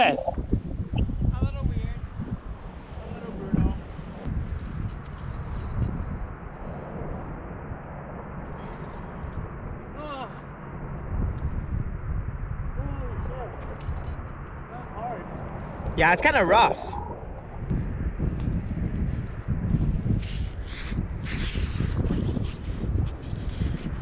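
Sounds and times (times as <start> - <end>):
wind rumbling on microphone: 0.0 - 24.0.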